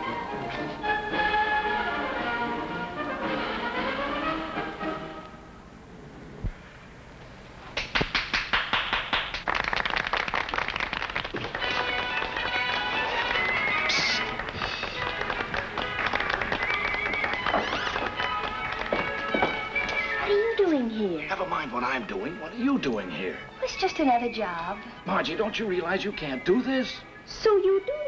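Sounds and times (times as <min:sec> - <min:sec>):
light orchestral music: 0:00.0 - 0:05.5, 0:11.5 - 0:28.0
crowd applauding: 0:07.8 - 0:20.6.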